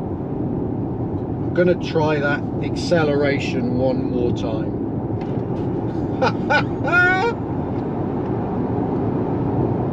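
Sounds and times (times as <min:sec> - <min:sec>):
car cabin road and wind noise: 0:00.0 - 0:09.9
man laughing: 0:06.0 - 0:07.4.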